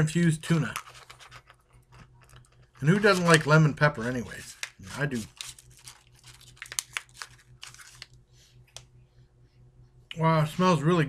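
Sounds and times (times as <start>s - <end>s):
foil pouch tearing and crinkling: 2.8s - 8.2s.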